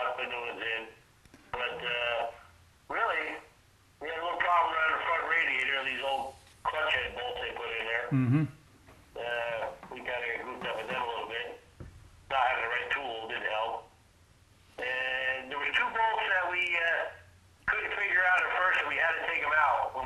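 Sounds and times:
man talking over telephone: 0:00.0 - 0:08.5, 0:09.2 - 0:11.6, 0:12.3 - 0:13.9, 0:14.8 - 0:20.0.

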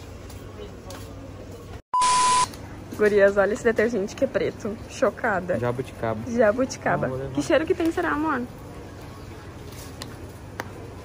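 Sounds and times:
faint shop ambience: 0:00.0 - 0:11.0
electronic beep: 0:02.0 - 0:02.5.

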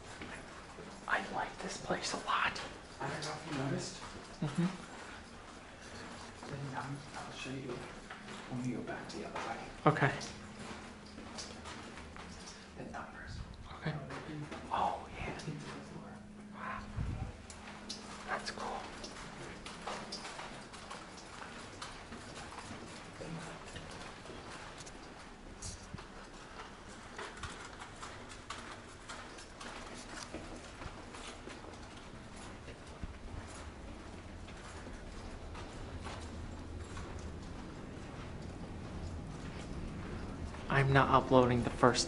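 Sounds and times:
faint low hum: 0:00.0 - 0:42.0
shoes tapping on hallway floor: 0:00.0 - 0:42.0.

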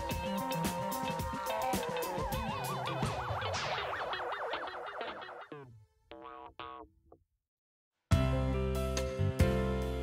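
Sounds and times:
playful background tune: 0:00.0 - 0:06.8.

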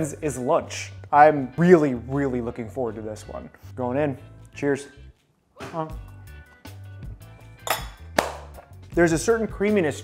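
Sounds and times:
background music: 0:00.0 - 0:10.0
fork clinking on plate: 0:07.6 - 0:08.1.

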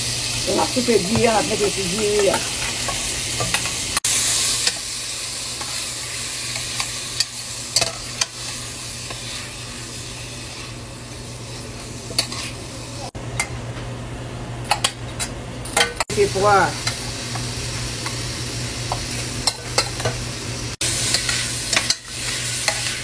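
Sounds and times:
shrimp sizzling in oil: 0:00.0 - 0:13.6, 0:15.8 - 0:23.0.

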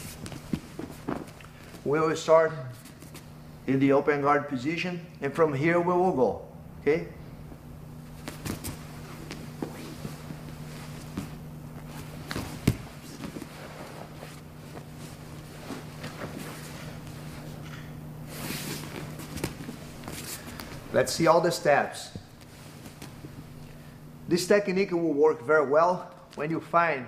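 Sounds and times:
fabric rustling: 0:00.0 - 0:01.9, 0:08.0 - 0:20.9, 0:22.2 - 0:23.9
steady low hum: 0:00.0 - 0:27.0
soft thumps of bodies on mat: 0:08.2 - 0:14.0.

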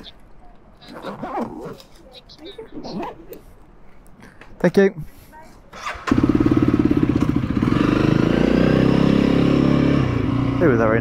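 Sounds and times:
motorcycle engine starting and revving: 0:05.7 - 0:11.0.

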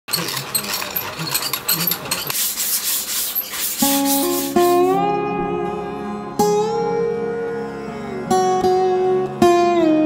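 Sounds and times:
pith strips rustling and scraping: 0:00.1 - 0:05.0
plucked string instrument: 0:03.8 - 0:10.0.

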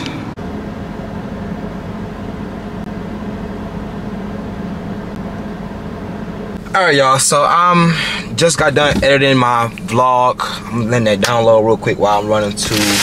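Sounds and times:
car cabin hum: 0:00.0 - 0:13.0.

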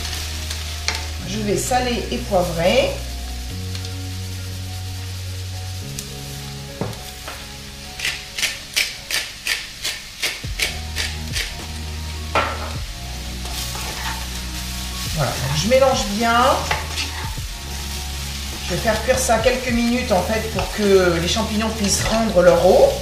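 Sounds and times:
background music with held chords: 0:00.0 - 0:23.0
faint sizzle: 0:00.0 - 0:23.0.

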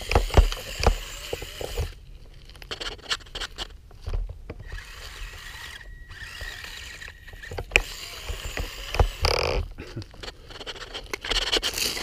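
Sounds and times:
small electric motor whining: 0:00.0 - 0:02.0, 0:04.6 - 0:12.0.

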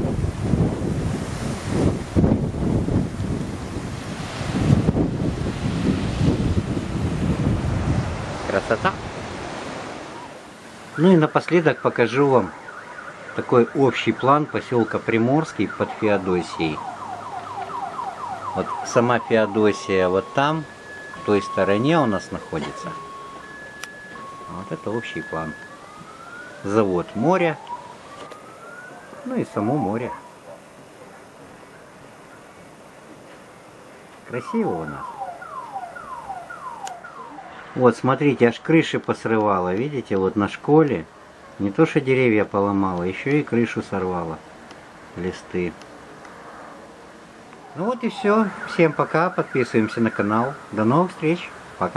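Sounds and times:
strong wind: 0:00.0 - 0:11.0
surf breaking on shore: 0:00.0 - 0:40.6
steady noisy background: 0:08.1 - 0:51.9
alarm falling tone: 0:10.2 - 0:30.4, 0:34.3 - 0:38.2, 0:47.6 - 0:50.6.

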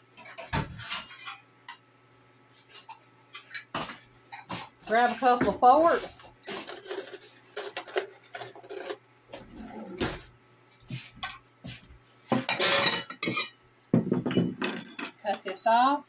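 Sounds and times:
forks and plates clinking: 0:02.7 - 0:09.0, 0:12.4 - 0:15.4.

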